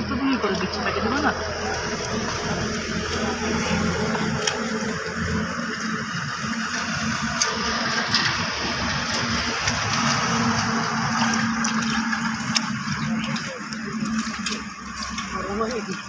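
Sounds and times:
shallow water running: 0.0s - 16.0s.

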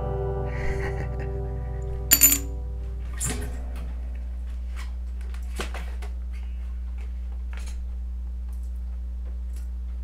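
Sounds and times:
bright metallic jingle: 2.1s - 2.5s.

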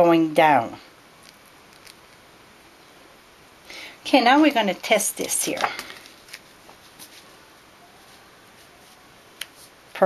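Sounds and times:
paper rustling: 5.4s - 7.4s.

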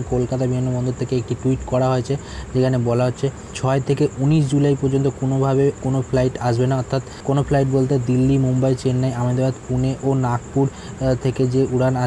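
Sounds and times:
faint high-pitched whine: 0.0s - 12.0s
man narrating: 0.0s - 12.0s.

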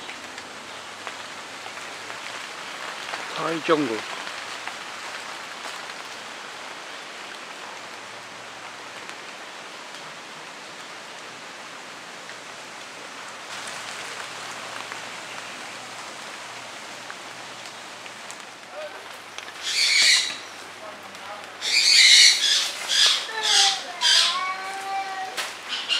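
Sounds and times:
rain on foliage: 0.0s - 25.9s.

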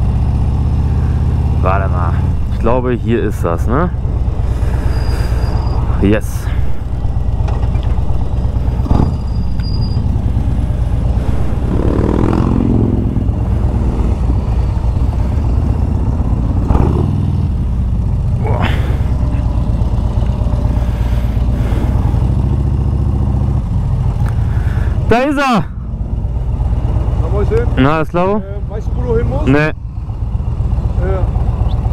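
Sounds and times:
motorcycle engine running: 0.0s - 31.9s.

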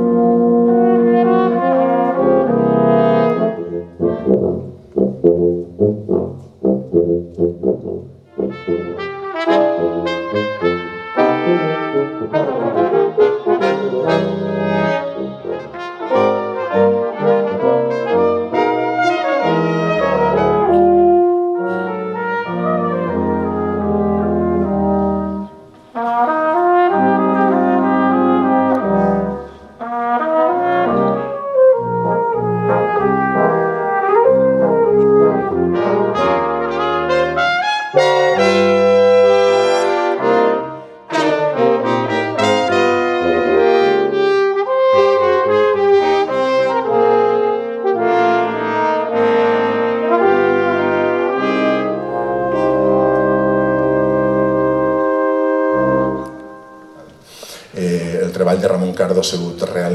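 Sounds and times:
brass quintet playing: 0.0s - 59.9s.

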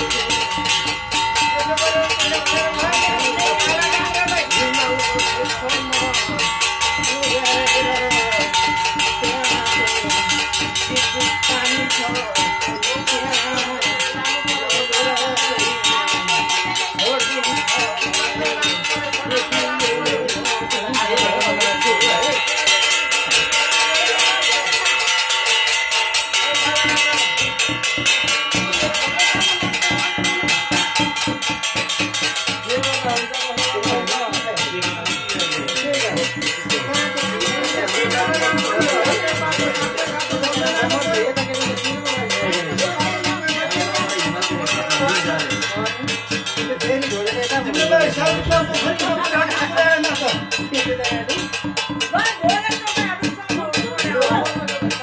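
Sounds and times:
brass plates beaten with sticks: 0.0s - 55.0s.

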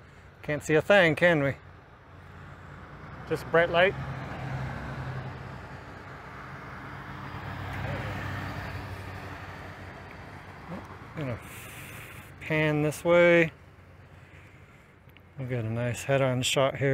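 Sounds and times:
distant engines and machinery hum: 0.0s - 16.9s.

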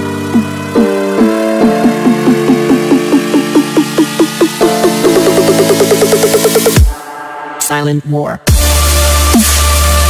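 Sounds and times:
buzzy synth notes: 0.0s - 7.8s.

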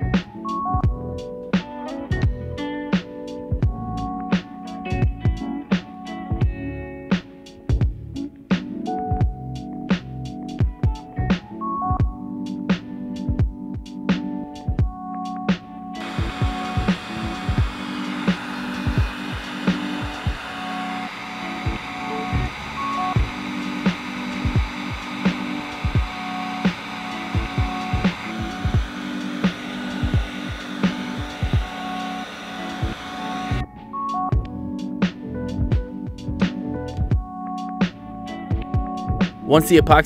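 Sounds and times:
heat gun blowing: 16.0s - 33.6s
electronic music with steady beat: 16.0s - 40.0s.

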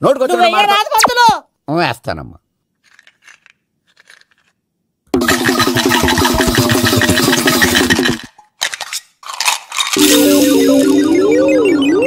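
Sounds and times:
shells rattling in hands: 2.8s - 4.6s, 7.6s - 10.0s
film music with fast figure: 10.0s - 12.0s.

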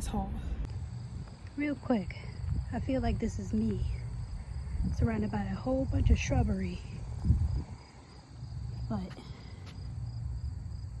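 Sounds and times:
insects droning: 0.0s - 11.0s
low rumble: 0.0s - 11.0s.

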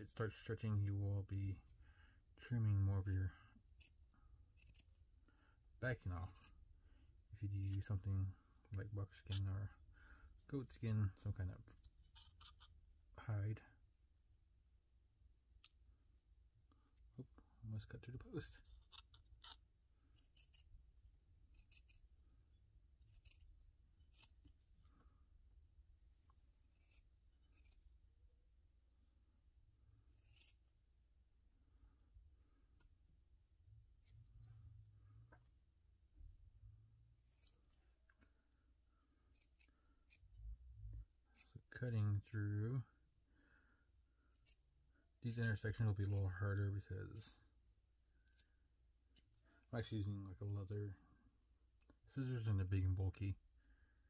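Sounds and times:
scissors cutting leather: 4.6s - 4.9s, 20.1s - 20.7s, 21.4s - 22.1s, 23.0s - 24.6s, 26.0s - 27.8s, 30.0s - 30.8s, 37.2s - 37.8s, 39.3s - 40.3s, 44.3s - 44.7s
scissors snipping leather: 39.3s - 40.2s.

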